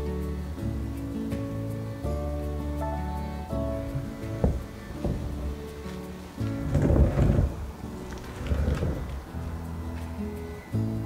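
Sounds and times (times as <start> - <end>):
soft background music: 0.0 - 11.0
canvas shifted on plastic sheet: 4.4 - 9.4.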